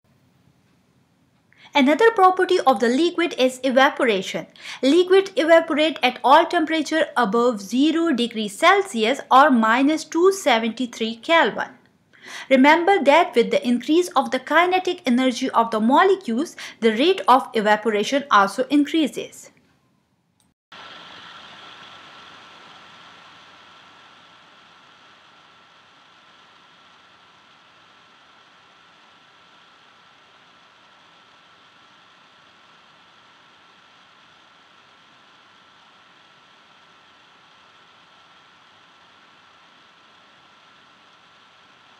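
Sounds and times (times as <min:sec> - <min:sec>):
faint steady hiss: 0:00.1 - 0:41.9
thin high whine: 0:20.8 - 0:41.9.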